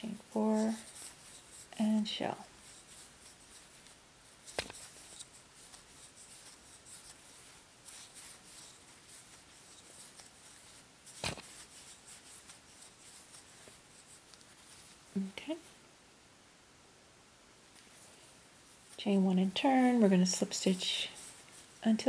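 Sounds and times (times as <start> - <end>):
yarn scratching over crochet hook: 0.0 - 15.7, 17.8 - 22.0.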